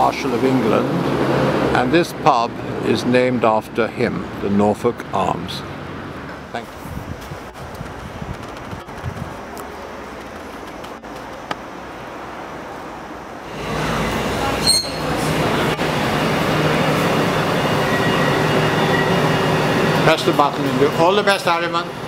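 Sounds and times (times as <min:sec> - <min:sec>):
electric train humming: 0:07.5 - 0:22.0
brief high squeal: 0:14.6 - 0:15.2.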